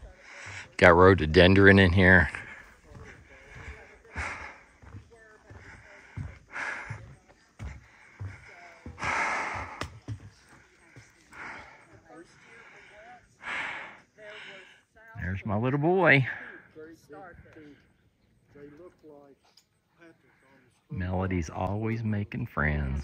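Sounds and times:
person breathing: 0.0 - 0.8, 2.3 - 10.0, 10.7 - 14.9
footsteps on wooden boardwalk: 0.0 - 14.5.

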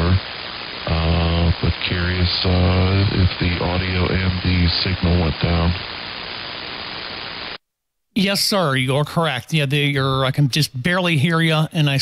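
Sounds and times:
radio static hiss: 0.0 - 7.6, 8.2 - 12.0.

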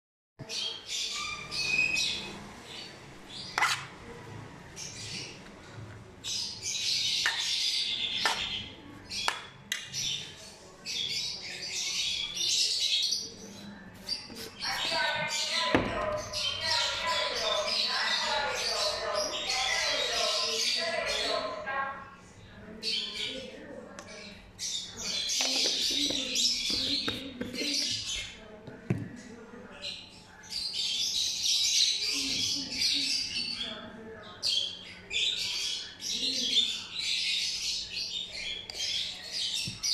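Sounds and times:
lovebirds squawking and chattering: 0.4 - 28.6, 29.3 - 39.9.

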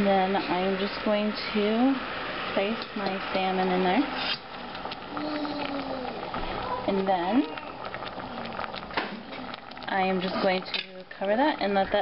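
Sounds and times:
water simmering in a pot: 0.0 - 12.0.

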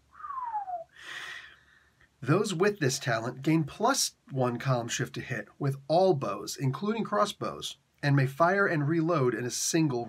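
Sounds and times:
whistle gliding down: 0.2 - 0.9.

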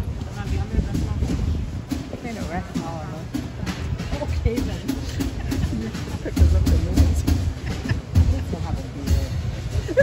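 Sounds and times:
jazz group playing: 0.0 - 9.9.

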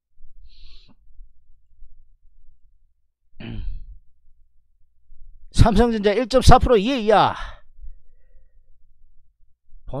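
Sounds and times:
man breathing into microphone: 0.4 - 1.1, 7.6 - 8.7.

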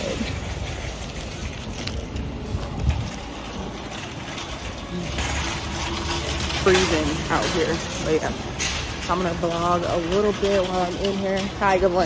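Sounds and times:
wind on microphone: 0.0 - 5.4
traffic rumble: 0.0 - 12.0.

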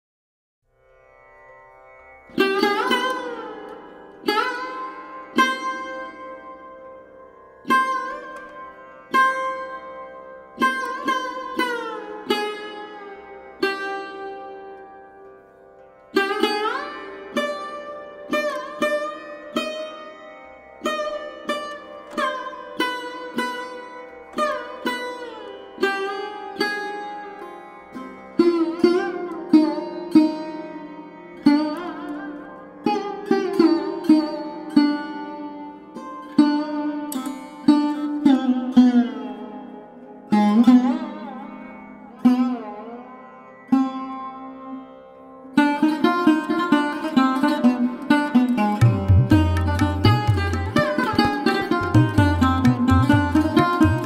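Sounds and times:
plucked string instrument notes: 45.5 - 54.0.

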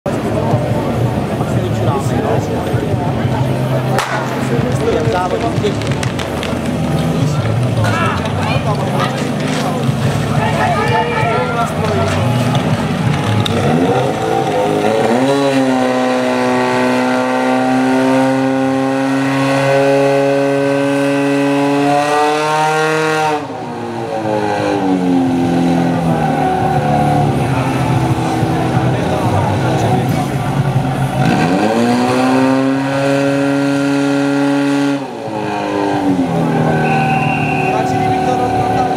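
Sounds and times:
people shouting: 10.4 - 14.8, 36.3 - 38.9
pump engine revving: 12.0 - 19.4.

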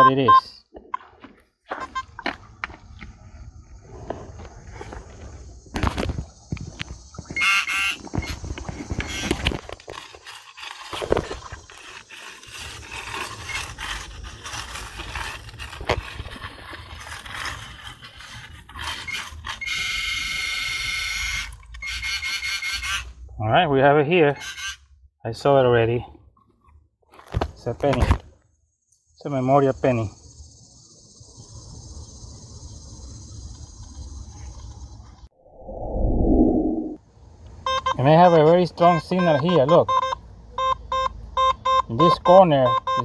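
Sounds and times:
gravel and stones clicking: 8.0 - 19.6.

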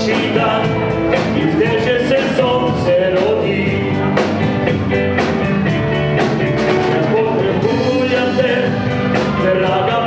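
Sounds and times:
drum kit beat: 0.0 - 10.0
keyboard: 0.0 - 10.0.

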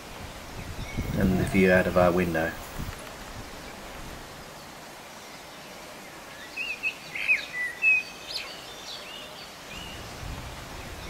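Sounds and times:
faint open-air hiss: 0.0 - 11.0
songbirds chirping: 0.0 - 11.0.

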